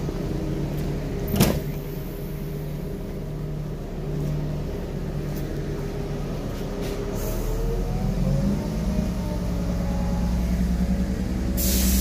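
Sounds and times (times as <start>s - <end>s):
diesel engine humming: 0.0s - 12.0s.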